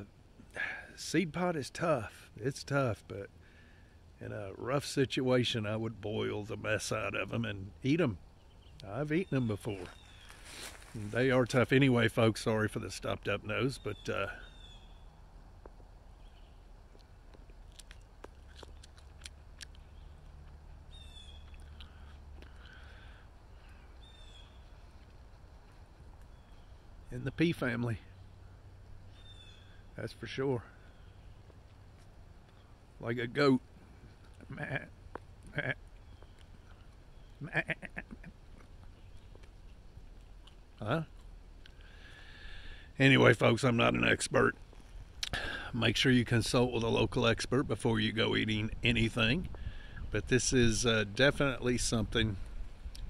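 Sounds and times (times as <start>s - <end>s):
faint bird chirps: 7.8s - 11.1s, 13.5s - 15.3s, 16.1s - 16.7s, 20.9s - 31.5s, 35.6s - 39.4s
leaf chewing clicks: 16.9s - 22.9s, 38.2s - 41.9s
man imitating goat bleat: 37.4s - 38.3s.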